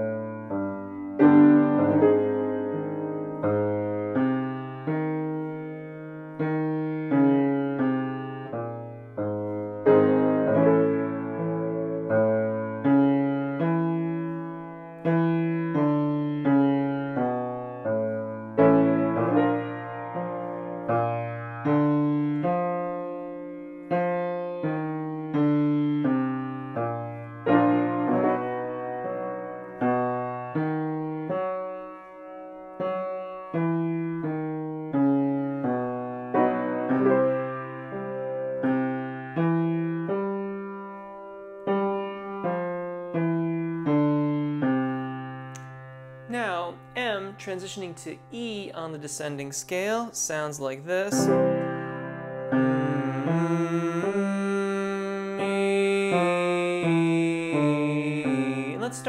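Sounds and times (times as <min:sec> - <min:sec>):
grand piano notes and chords: 0:00.0 - 0:59.0.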